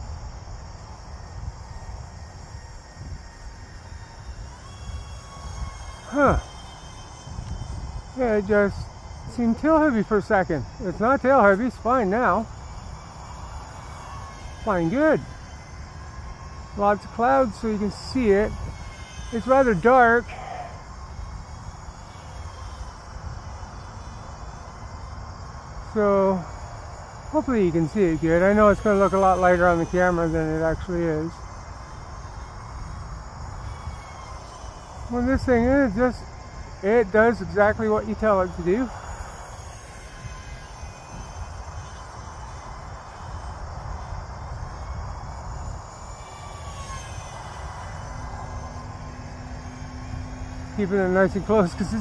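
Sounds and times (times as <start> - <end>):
faint crickets chirping: 0.0 - 52.0
low wind rumble on microphone: 0.0 - 52.0
model jet fans whining: 0.0 - 52.0.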